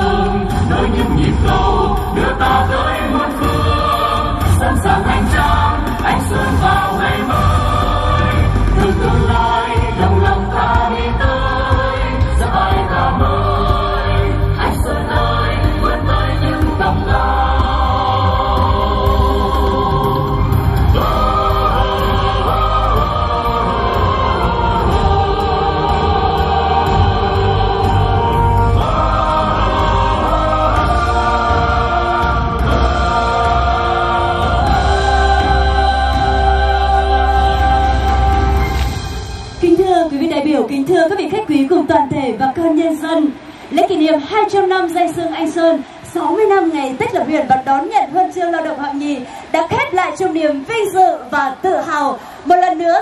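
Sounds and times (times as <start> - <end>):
choir singing: 0.0 - 40.6.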